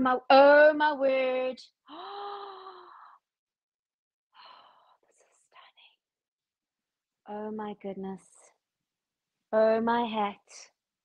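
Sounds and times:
woman's breathy ooh: 0:01.9 - 0:03.2
soft whispered breathy sounds: 0:04.3 - 0:06.1.

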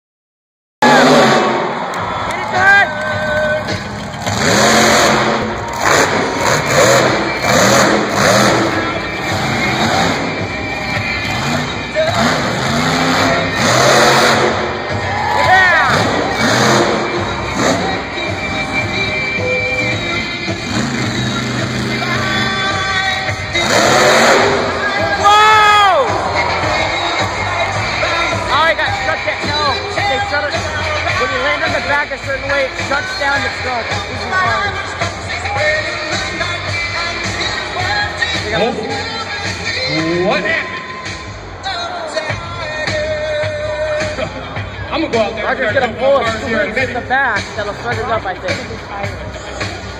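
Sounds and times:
monster truck engine revving: 0:00.8 - 0:02.1, 0:03.1 - 0:49.9
arena music over loudspeakers: 0:00.8 - 0:49.9
announcer speaking: 0:28.1 - 0:34.9, 0:38.4 - 0:39.2, 0:39.8 - 0:40.9, 0:44.8 - 0:49.4.

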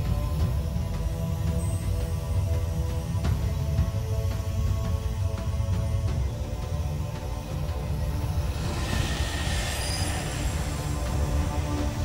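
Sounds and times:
dramatic music: 0:00.0 - 0:12.0
low rumble: 0:07.4 - 0:12.0
metallic screeching swell: 0:08.3 - 0:12.0.

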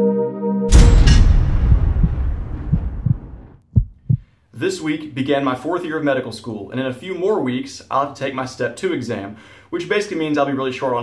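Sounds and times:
cinematic boom rumble: 0:00.7 - 0:04.2
heavy heartbeat thump: 0:00.7 - 0:04.2.

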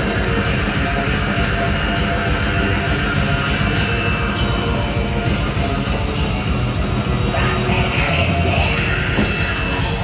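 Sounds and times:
bass guitar: 0:00.0 - 0:10.0
distorted electric guitars: 0:00.0 - 0:10.0
drum kit with cymbals: 0:00.0 - 0:10.0.

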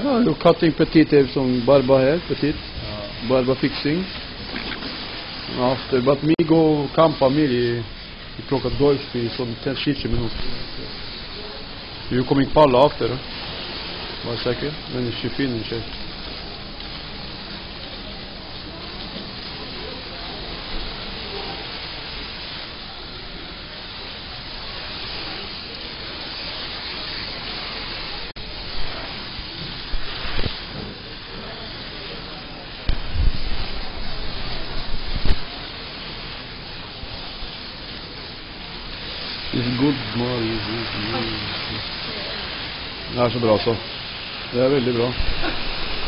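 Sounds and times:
water spray hissing: 0:00.0 - 0:46.0.

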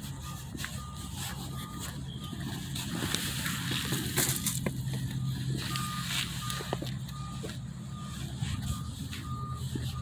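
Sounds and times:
low engine rumble: 0:00.0 - 0:10.0
vehicle reversing alarm beeping: 0:00.0 - 0:10.0.

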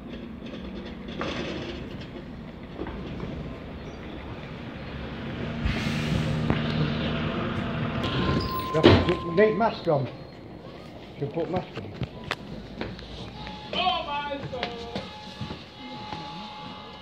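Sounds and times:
diesel bus engine running: 0:00.0 - 0:17.0
air hiss: 0:05.6 - 0:06.5.

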